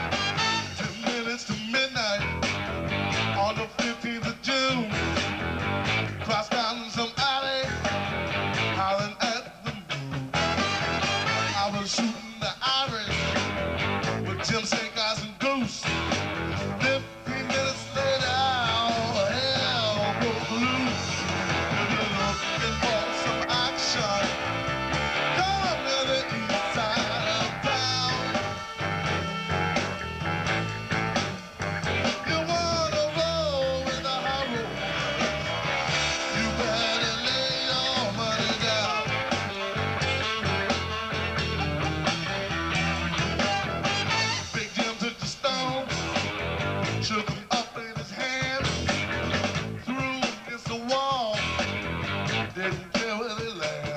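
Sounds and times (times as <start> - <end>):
electric bass: 0.0 - 1.0, 1.8 - 6.4, 7.5 - 9.0, 9.7 - 12.0, 13.0 - 14.8, 15.8 - 44.8, 45.6 - 47.3, 48.5 - 50.0, 51.3 - 52.7
horn section: 0.0 - 1.3, 10.3 - 12.3, 15.9 - 47.1
drums: 0.0 - 53.9
guitar: 0.0 - 53.9.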